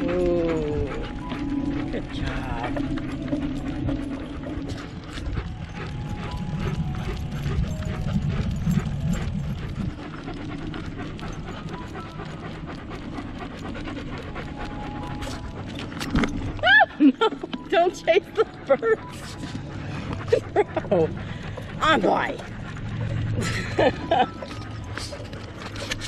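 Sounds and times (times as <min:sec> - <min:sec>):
wind rumble on microphone: 0:00.0 - 0:14.6
dogs panting: 0:00.0 - 0:26.0.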